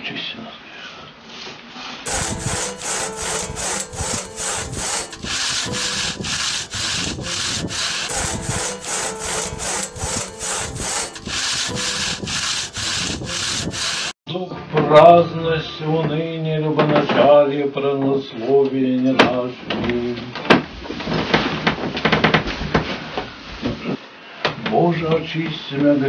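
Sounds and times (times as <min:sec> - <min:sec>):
handsaw cutting through log: 0:02.1 - 0:14.2.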